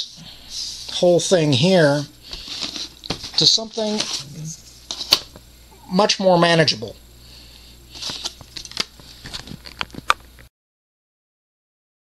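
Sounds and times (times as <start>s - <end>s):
faint steady hum: 0.0s - 10.5s
plastic part clicks and rustles: 8.0s - 10.4s.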